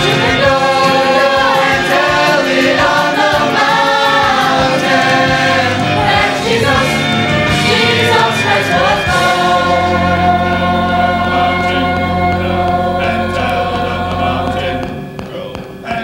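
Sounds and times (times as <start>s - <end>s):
choir singing sustained chords: 0.0s - 15.2s.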